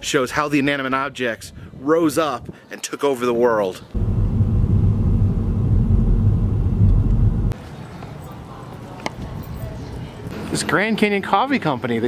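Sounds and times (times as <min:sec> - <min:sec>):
car engine and tyre noise: 0:04.0 - 0:07.6.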